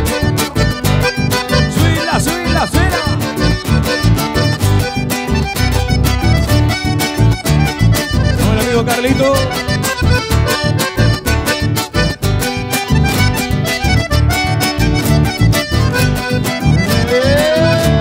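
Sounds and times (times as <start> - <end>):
accordion: 0.0 - 18.0
live band playing: 0.0 - 18.0.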